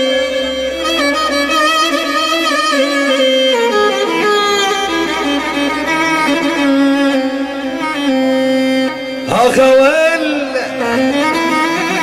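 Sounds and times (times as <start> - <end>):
keyboard violin-like melody: 0.0 - 12.0
steady musical accompaniment: 0.0 - 12.0.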